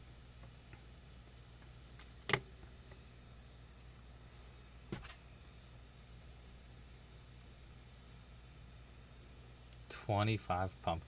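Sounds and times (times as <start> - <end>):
faint hum: 0.0 - 11.0.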